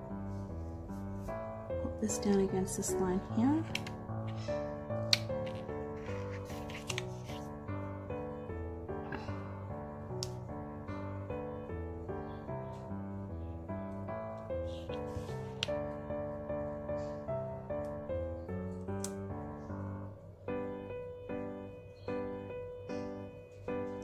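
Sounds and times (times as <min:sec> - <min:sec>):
background music: 0:00.0 - 0:24.0
hands handling paper and tape: 0:03.7 - 0:07.6.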